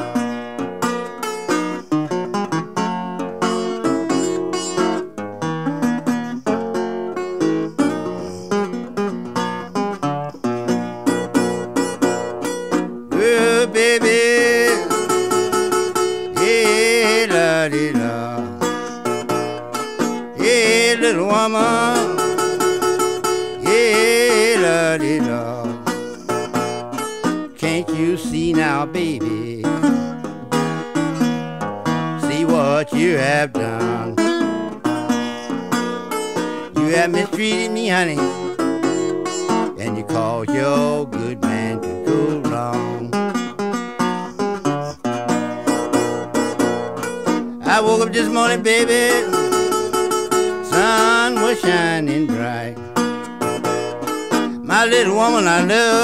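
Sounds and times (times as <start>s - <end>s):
acoustic blues guitar: 0.0s - 56.0s.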